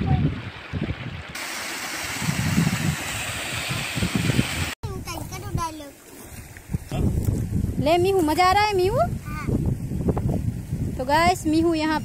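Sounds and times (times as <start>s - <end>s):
wind buffeting microphone: 0.0s - 1.4s, 2.0s - 12.0s.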